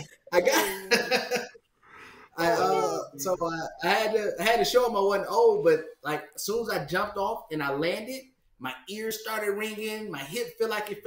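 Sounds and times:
man talking: 0:00.0 - 0:01.4, 0:02.4 - 0:11.0
men laughing: 0:00.4 - 0:01.6.

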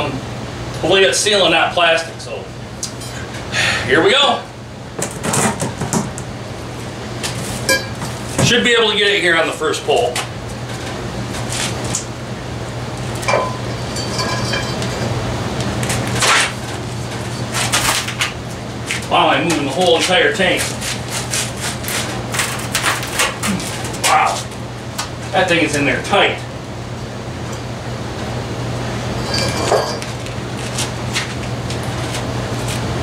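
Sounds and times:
furnace humming: 0:00.0 - 0:33.0
metallic clink: 0:29.2 - 0:30.1.

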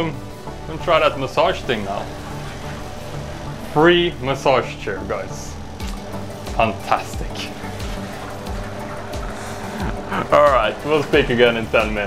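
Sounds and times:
background music: 0:00.0 - 0:12.0
washing machine motor hum: 0:00.0 - 0:12.0.

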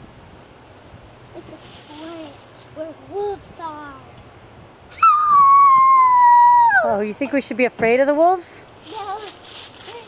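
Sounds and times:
girl howling like a wolf: 0:04.9 - 0:07.0.

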